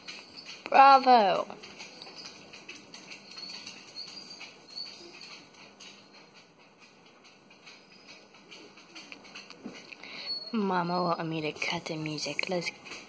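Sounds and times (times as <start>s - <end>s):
faint high bird chirps: 10.1s - 11.4s.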